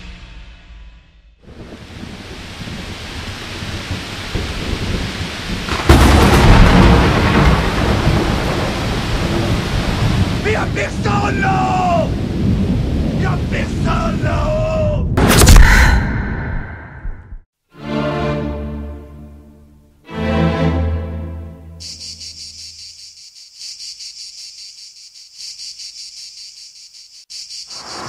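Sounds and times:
steady rain: 0:01.5 - 0:14.3
thunderclap rumbling: 0:01.5 - 0:15.2.

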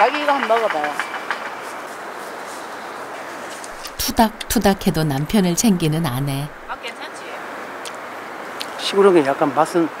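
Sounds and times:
outdoor orchard ambience hiss: 0:00.0 - 0:10.0.

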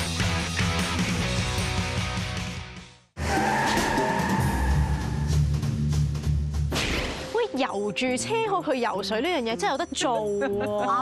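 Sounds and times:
background music: 0:00.0 - 0:11.0
cartoon tyre screech: 0:03.2 - 0:05.3.

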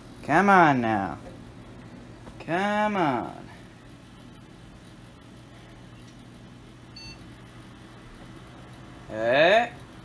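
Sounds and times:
computer fans humming: 0:00.0 - 0:10.0.

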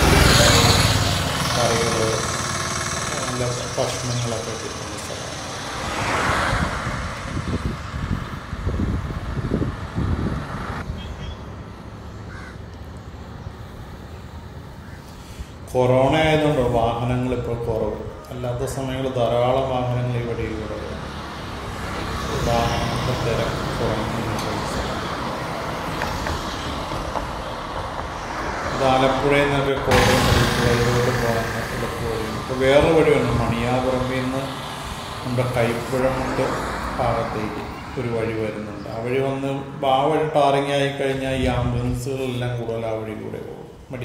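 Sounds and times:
vehicle passing close by: 0:00.0 - 0:12.0, 0:19.4 - 0:39.8
distant traffic hum: 0:00.0 - 0:44.0
low traffic rumbling: 0:00.0 - 0:44.0.

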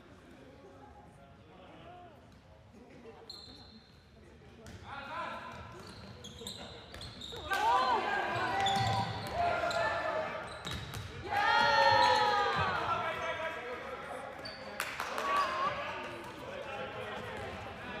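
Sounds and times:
shoes squeaking: 0:05.8 - 0:07.5.

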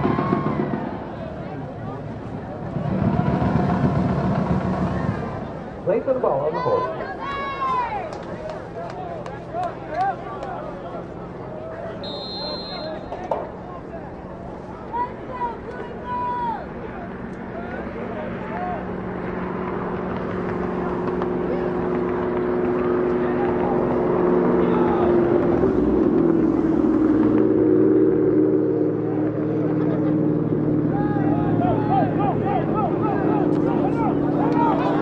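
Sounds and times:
motor engine running: 0:00.0 - 0:05.9, 0:16.8 - 0:35.0
distant shouting voices: 0:00.0 - 0:27.0, 0:28.8 - 0:35.0.

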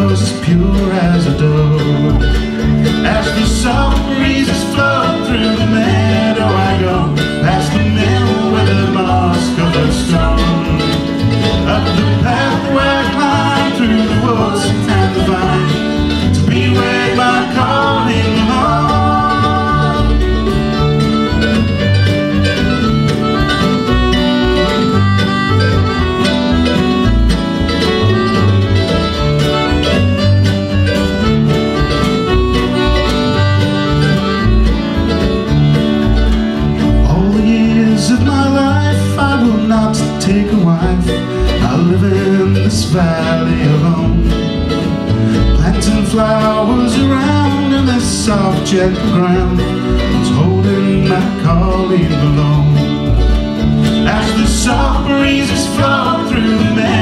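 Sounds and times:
accordion: 0:00.0 - 0:57.0
mandolin: 0:00.0 - 0:57.0
plucked upright bass: 0:00.0 - 0:57.0
strummed acoustic guitar: 0:00.0 - 0:57.0
piano accordion: 0:10.4 - 0:37.1.

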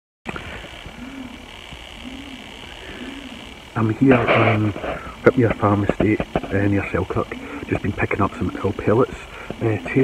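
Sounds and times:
outdoor hiss: 0:00.3 - 0:10.0
low rising-and-falling calls: 0:00.5 - 0:04.1
man speaking: 0:03.8 - 0:10.0.

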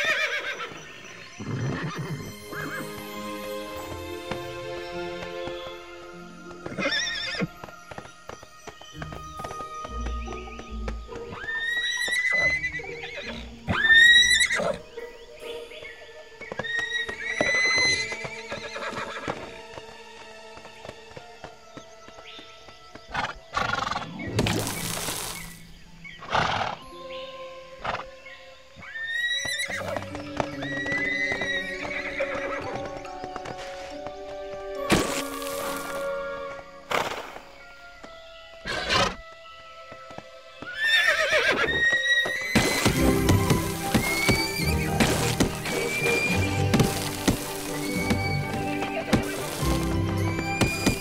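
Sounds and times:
soft background music: 0:00.0 - 0:51.0.

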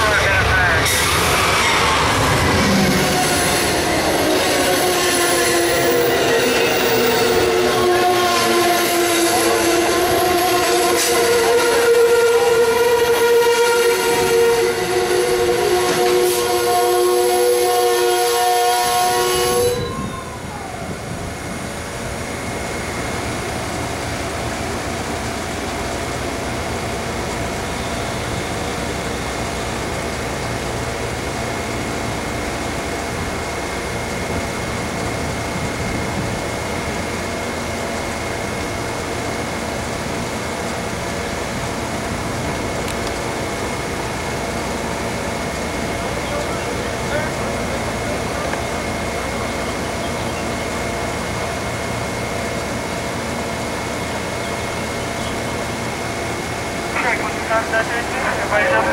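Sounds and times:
train horn blast: 0:02.9 - 0:20.2.

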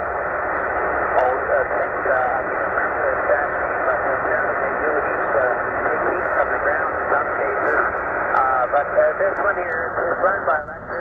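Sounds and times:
radio band noise hiss: 0:00.0 - 0:11.0
tinny radio voice: 0:01.1 - 0:11.0.

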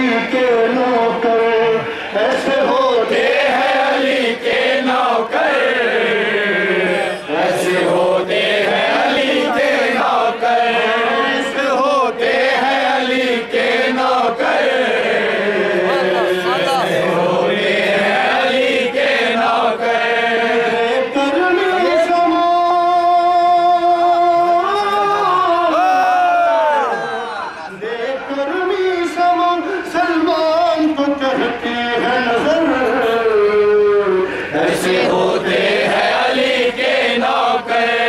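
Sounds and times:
man singing unaccompanied: 0:00.0 - 0:25.8, 0:27.7 - 0:38.0.

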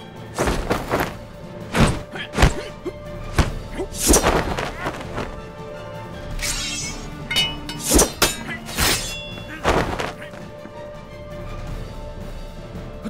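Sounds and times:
film score music: 0:00.0 - 0:13.0.

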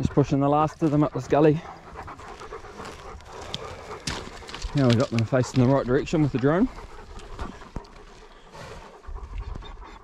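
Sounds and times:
open-mouthed panting: 0:00.0 - 0:10.0.

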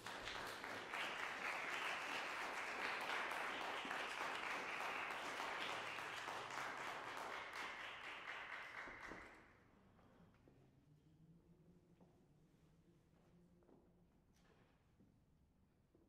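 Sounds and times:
audience applauding: 0:00.0 - 0:09.4.

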